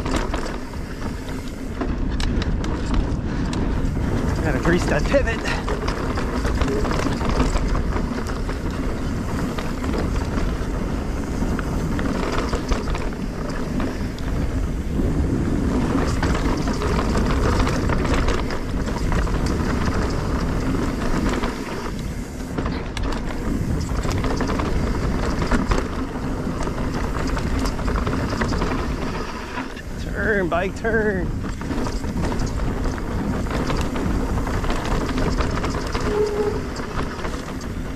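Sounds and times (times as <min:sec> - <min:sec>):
bike rattling over bumps: 0:00.0 - 0:37.9
tyres rolling over dirt and rocks: 0:00.0 - 0:37.9
wind on microphone: 0:00.0 - 0:37.9.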